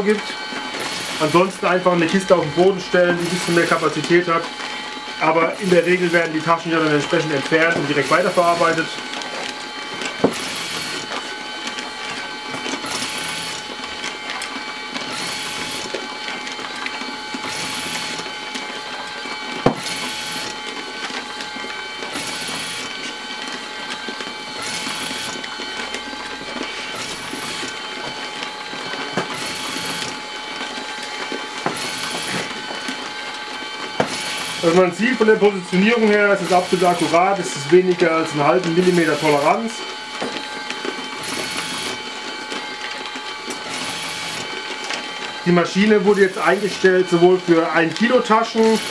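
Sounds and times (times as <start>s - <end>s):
labelling machine whirring: 0.0s - 48.9s.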